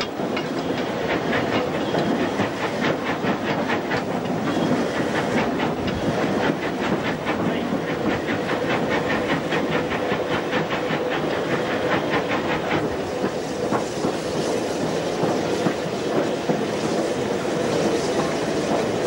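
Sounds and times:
steam hissing: 0:00.0 - 0:19.0
steam locomotive beat: 0:00.0 - 0:19.0.

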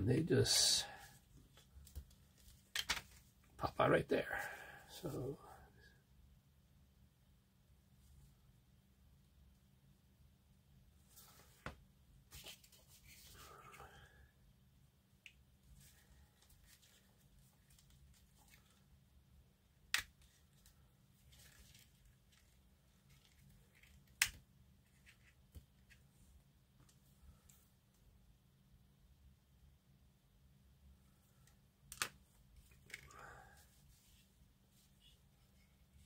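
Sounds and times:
plastic parts clicking together: 0:31.9 - 0:33.1.

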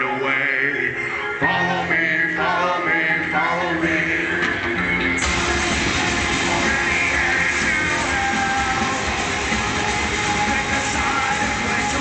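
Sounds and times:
rock band playing loudly: 0:01.4 - 0:12.0.

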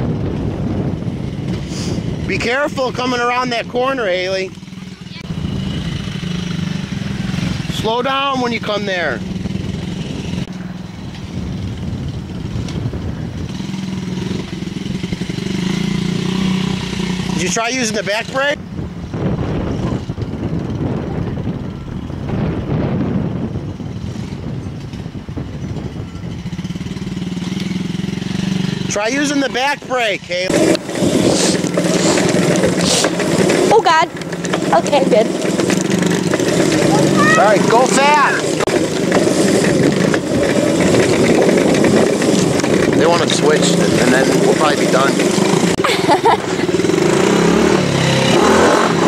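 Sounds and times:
dirt bike engine droning: 0:00.0 - 0:49.0.

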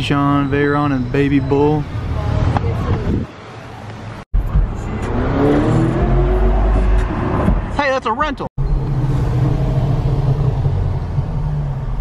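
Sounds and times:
car engine accelerating: 0:04.4 - 0:07.8, 0:08.6 - 0:12.0.

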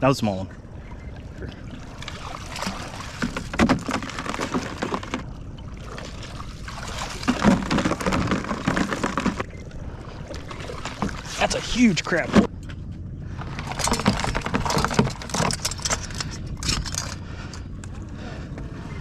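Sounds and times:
water splashing and sloshing: 0:00.0 - 0:19.0.

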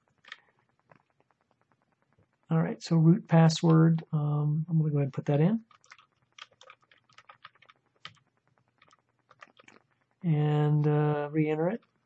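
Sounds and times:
typing on computer keyboard: 0:05.6 - 0:09.8.

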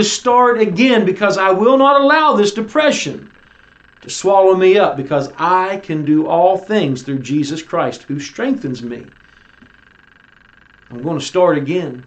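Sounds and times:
faint electrical hum and buzz: 0:00.0 - 0:12.0.

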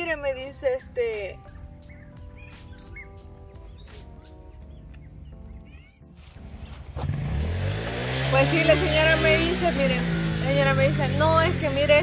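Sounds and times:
birds chirping: 0:00.0 - 0:12.0
vehicle engine approaching: 0:06.2 - 0:12.0.

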